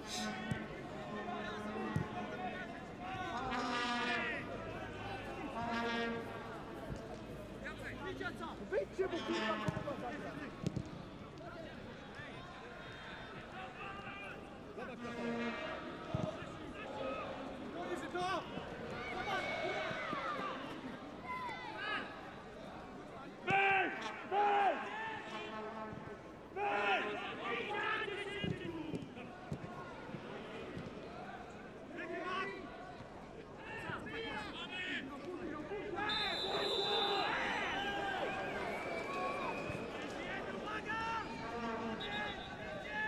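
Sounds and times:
stadium crowd ambience: 0.0s - 43.0s.

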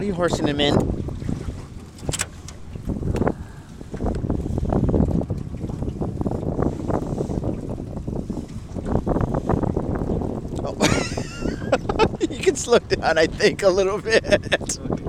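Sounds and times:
water slapping boat: 0.0s - 15.0s
wind buffeting microphone: 0.0s - 15.0s.

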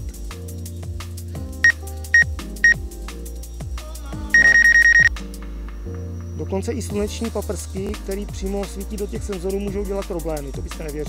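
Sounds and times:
background music with bass: 0.0s - 11.0s
electronic warning beeps: 4.4s - 5.1s.

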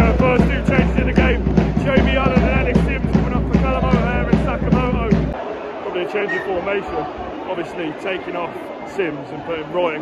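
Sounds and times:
drum beat: 0.0s - 5.4s
heavy bass: 0.0s - 5.4s.

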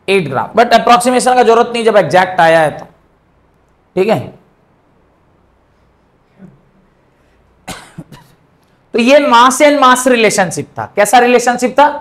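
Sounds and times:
man coughing: 7.6s - 8.5s.

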